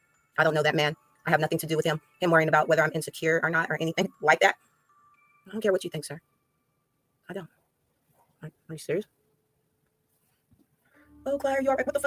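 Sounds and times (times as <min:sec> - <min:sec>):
woman speaking: 0:00.4 - 0:04.6, 0:11.1 - 0:12.0.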